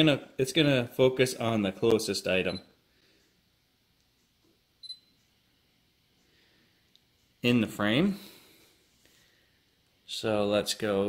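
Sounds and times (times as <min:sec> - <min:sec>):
camera focus beep: 0:04.8 - 0:05.2.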